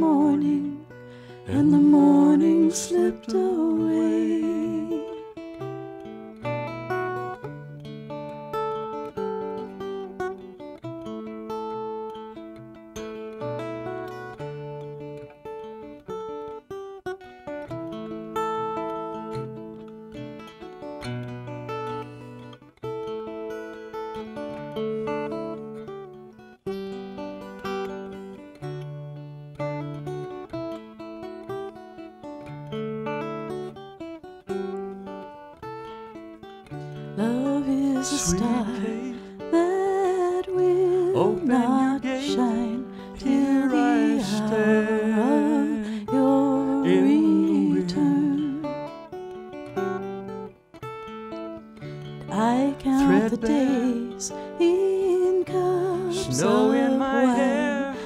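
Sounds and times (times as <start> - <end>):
acoustic guitar plucking: 0.0 - 58.0.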